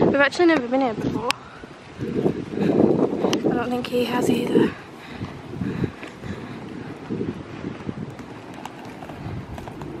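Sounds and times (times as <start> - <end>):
suitcase wheels rolling on paving: 2.0 - 10.0.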